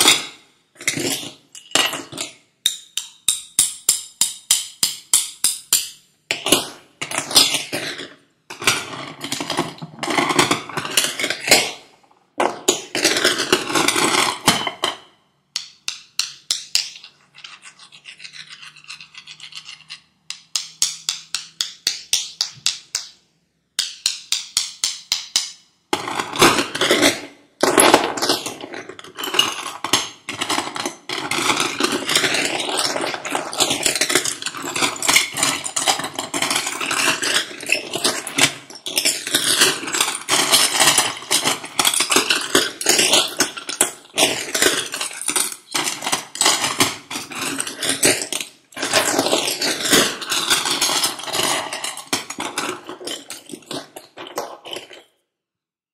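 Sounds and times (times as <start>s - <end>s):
seashells rattling and clicking: 29.7s - 55.1s.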